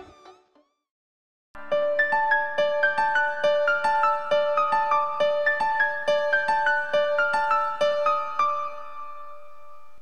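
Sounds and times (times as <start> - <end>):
keyboard background music: 1.6 - 10.0.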